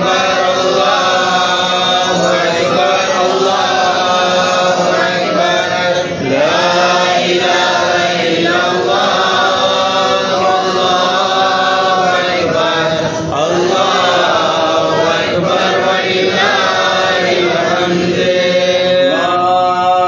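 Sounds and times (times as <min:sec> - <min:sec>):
devotional vocal chanting: 0:00.0 - 0:20.0.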